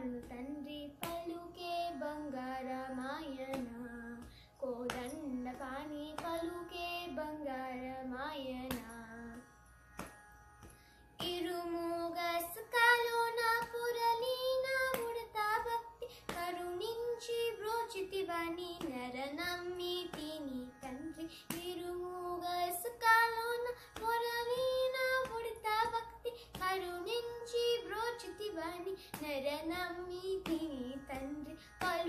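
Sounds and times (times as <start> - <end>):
girl singing: 0.0 - 9.4, 11.2 - 32.0.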